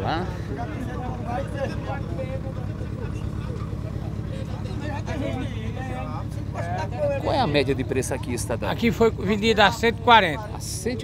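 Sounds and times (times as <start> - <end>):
people talking: 0.0 - 11.0
vehicle engine idling: 0.0 - 11.0.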